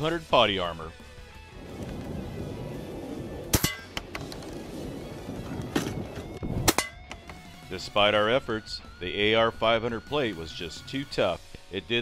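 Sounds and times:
shotgun slugs hitting steel plate: 3.5 - 4.2, 6.6 - 7.4.

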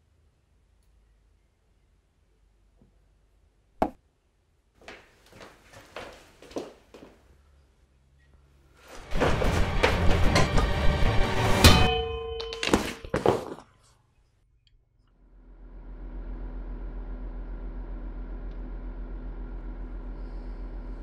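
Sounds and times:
scuffle: 4.8 - 7.2, 12.7 - 13.8
music: 9.0 - 12.0
metal object clanging: 9.1 - 13.2.

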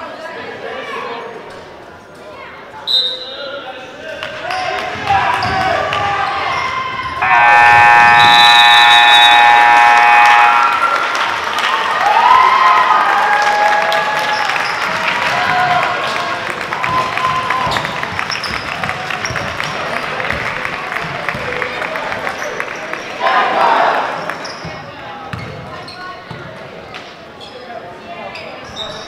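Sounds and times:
spectators' voices: 4.1 - 17.8, 19.6 - 25.3
scoreboard buzzer blast: 7.2 - 11.0.

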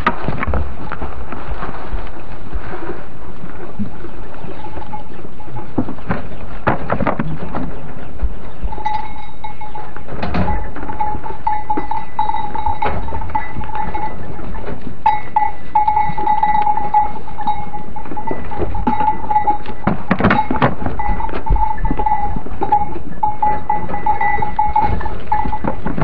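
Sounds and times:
knocks and rustles: 0.0 - 2.2, 5.5 - 9.2, 10.0 - 16.7, 17.5 - 26.0.

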